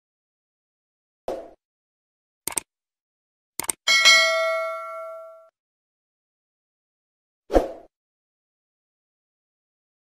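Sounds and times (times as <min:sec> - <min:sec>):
double mouse click: 0:02.5 - 0:02.7, 0:03.6 - 0:03.8
bright bell ding: 0:03.9 - 0:05.5.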